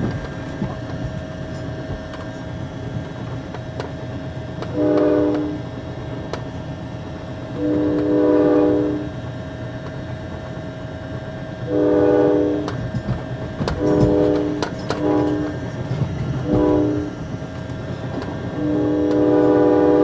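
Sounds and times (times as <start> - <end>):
rail clicks: 0.0 - 8.2, 9.1 - 11.4, 12.2 - 20.0
train rumbling: 0.0 - 20.0
train whistle chord: 4.7 - 5.6, 7.6 - 9.2, 11.7 - 12.8, 13.8 - 15.6, 16.4 - 17.2, 18.5 - 20.0.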